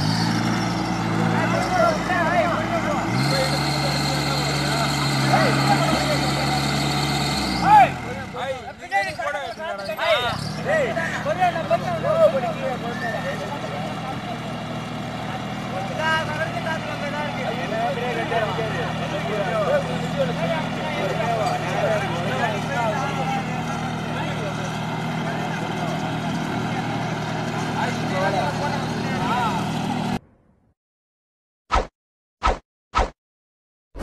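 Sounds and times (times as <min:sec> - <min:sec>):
tractor diesel engine running: 0:00.0 - 0:30.2
men shouting: 0:01.1 - 0:14.5, 0:15.8 - 0:26.2.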